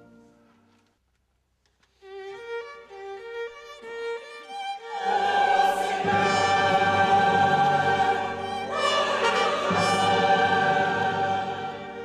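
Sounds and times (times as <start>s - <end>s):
string orchestra: 1.9s - 12.0s
choir singing: 4.8s - 12.0s.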